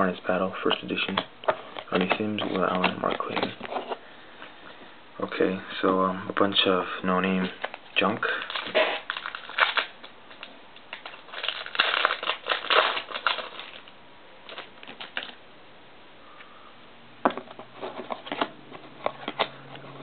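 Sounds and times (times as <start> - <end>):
cards rustling and clicking: 0.7 - 4.0, 7.2 - 13.9, 14.5 - 15.4, 17.4 - 20.0
foil wrapper tearing and crinkling: 7.5 - 15.4.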